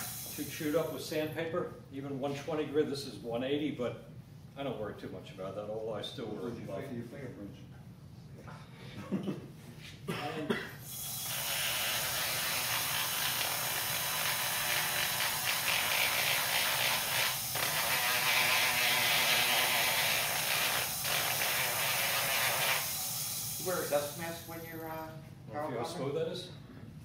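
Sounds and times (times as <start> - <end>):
sanding drum hissing against wood: 0.0 - 0.8.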